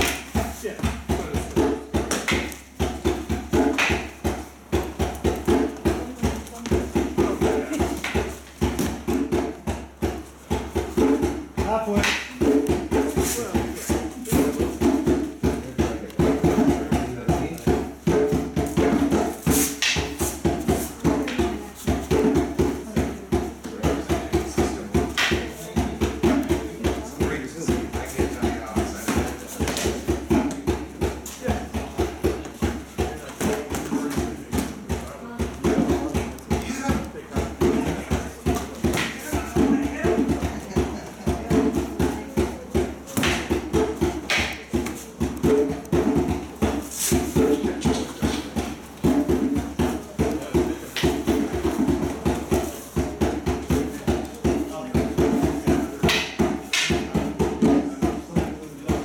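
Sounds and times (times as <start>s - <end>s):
hand percussion drum rhythm: 0.0s - 59.0s
wooden sticks clacking: 56.1s - 57.0s.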